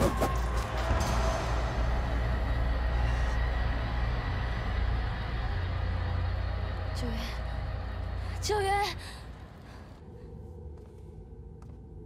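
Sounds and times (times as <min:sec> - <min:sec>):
deep rumble: 0:00.0 - 0:12.0.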